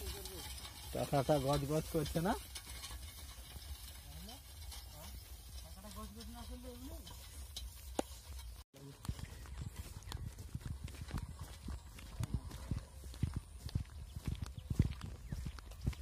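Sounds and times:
footsteps on dirt track: 0:00.0 - 0:16.0.

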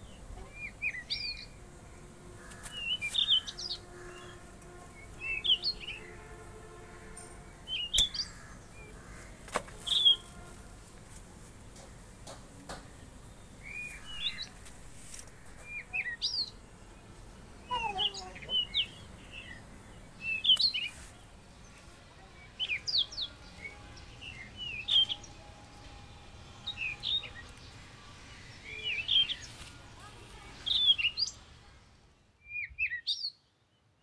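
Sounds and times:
birds chirping: 0:00.0 - 0:10.6, 0:11.7 - 0:33.9.

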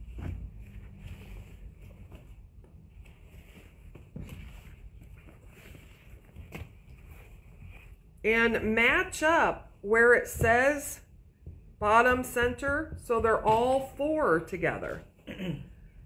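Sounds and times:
soft brushes against mat: 0:00.0 - 0:08.2
fabric rustling: 0:00.0 - 0:08.6.

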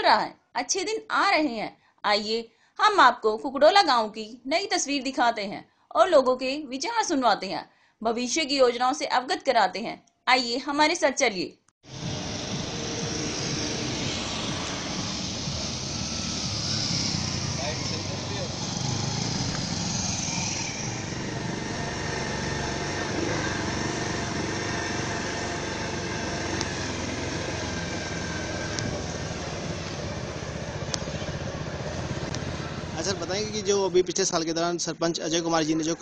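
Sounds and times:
vehicle engine driving: 0:11.8 - 0:36.0.

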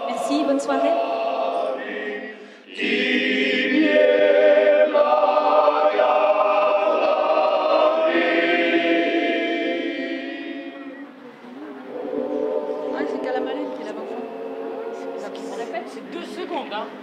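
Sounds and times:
men's choir singing a cappella: 0:00.0 - 0:16.1.

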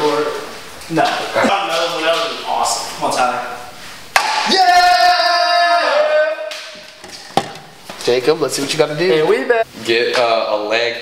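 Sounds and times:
man shouting: 0:04.4 - 0:06.5.

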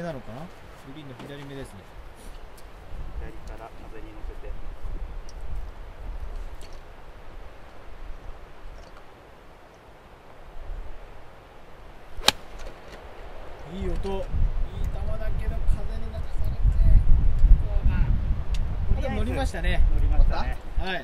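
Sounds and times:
wind rumble on microphone: 0:01.7 - 0:09.1, 0:10.4 - 0:21.0
golf club hitting ball: 0:12.2 - 0:13.0.

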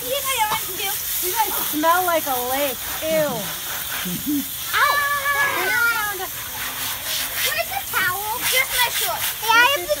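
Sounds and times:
children's voices: 0:00.0 - 0:02.1, 0:04.5 - 0:10.0
garden hose spraying water: 0:00.0 - 0:10.0.

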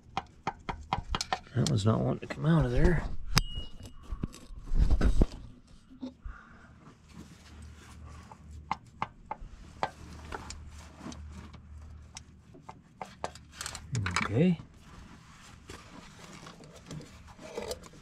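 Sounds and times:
small metal clicks and taps: 0:00.1 - 0:01.8
low steady hum: 0:01.1 - 0:18.0.

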